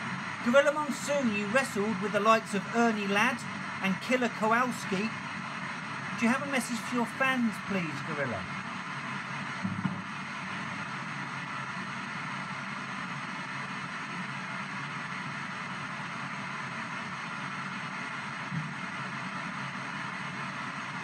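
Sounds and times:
radio static hiss: 0.0 - 21.0.

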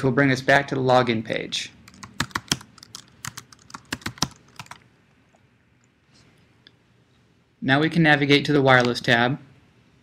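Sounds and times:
computer keyboard typing: 1.9 - 4.8.

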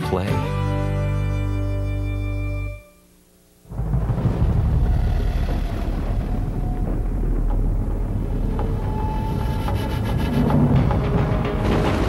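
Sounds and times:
deep steady rumble: 3.6 - 12.0
cinematic soundtrack music: 3.7 - 12.0.

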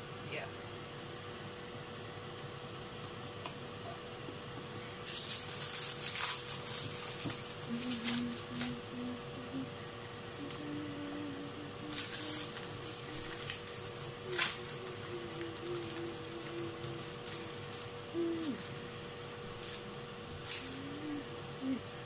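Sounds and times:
faint electrical hum: 0.0 - 22.0
person humming softly: 6.7 - 19.0, 19.6 - 22.0.

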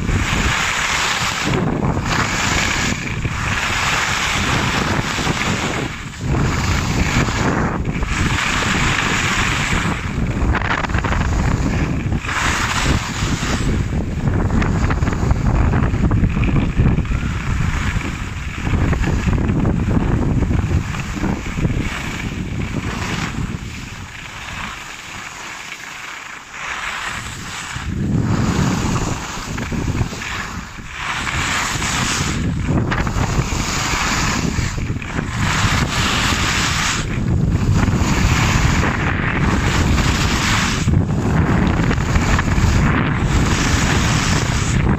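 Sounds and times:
skis scraping snow: 0.0 - 44.9
wind buffeting microphone: 0.0 - 44.9.

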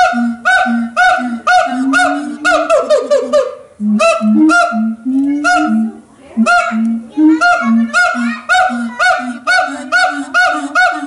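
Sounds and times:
siamang calling loudly: 0.0 - 11.0.

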